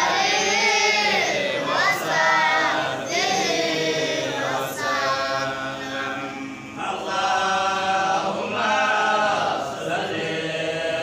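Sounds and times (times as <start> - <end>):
group of voices chanting: 0.0 - 11.0.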